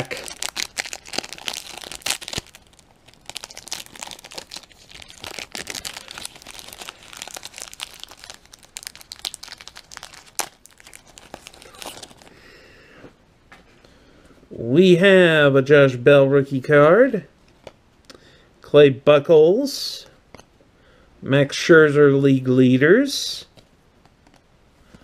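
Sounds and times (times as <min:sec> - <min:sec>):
plastic wrapper tearing and crinkling: 0:00.0 - 0:12.3.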